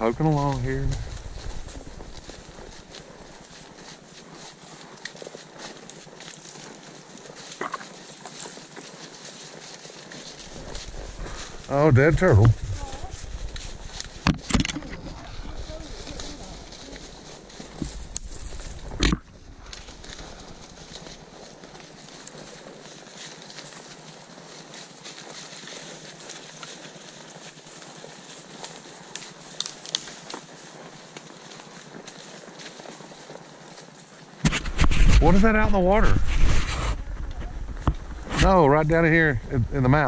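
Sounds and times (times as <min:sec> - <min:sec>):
hooves crunching through dry leaves: 0:00.0 - 0:40.0.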